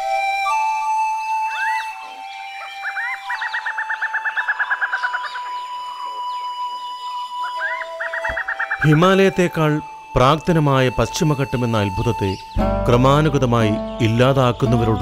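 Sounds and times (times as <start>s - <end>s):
bird trilling call: 0.0s - 15.0s
soft flute-like music: 0.0s - 15.0s.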